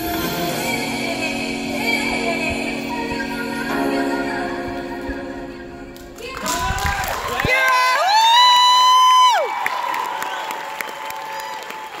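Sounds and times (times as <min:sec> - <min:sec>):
audience cheering and applauding: 0:06.2 - 0:12.0
high-pitched whoop: 0:06.3 - 0:12.0.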